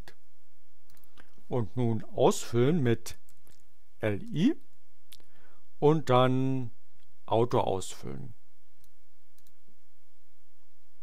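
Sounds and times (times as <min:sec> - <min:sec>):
recording hiss: 0:00.0 - 0:11.0
computer mouse clicks: 0:00.9 - 0:01.3, 0:08.8 - 0:09.6.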